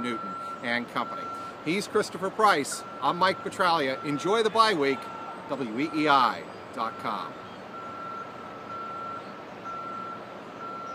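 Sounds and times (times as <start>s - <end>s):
faint outdoor background noise: 0.0s - 10.9s
reversing alarm beeping: 0.0s - 10.9s.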